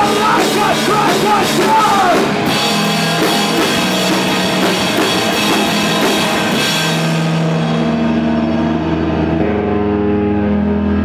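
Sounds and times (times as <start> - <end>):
distorted electric guitars droning: 0.0 - 11.0.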